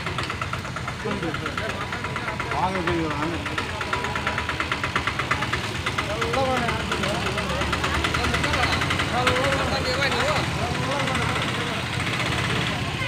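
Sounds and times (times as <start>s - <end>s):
background voices talking: 0.0s - 13.0s
vehicle engine idling: 0.0s - 13.0s.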